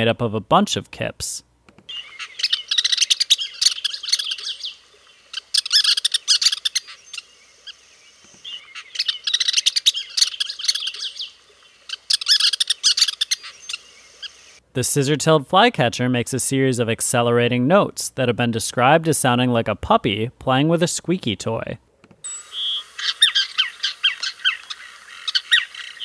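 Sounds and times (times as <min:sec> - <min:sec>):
bird chattering kip calls: 0:01.9 - 0:07.8, 0:08.4 - 0:14.6, 0:22.4 - 0:26.0.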